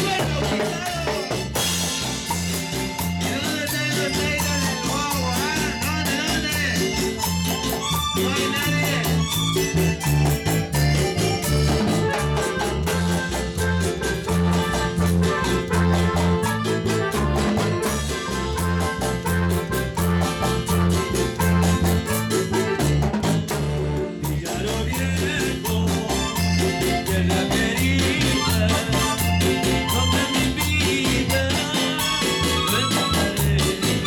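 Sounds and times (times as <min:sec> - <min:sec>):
electronic keyboard melody: 0:00.0 - 0:34.0
fast percussion beat: 0:00.0 - 0:34.0
repeating bass line: 0:00.0 - 0:34.0.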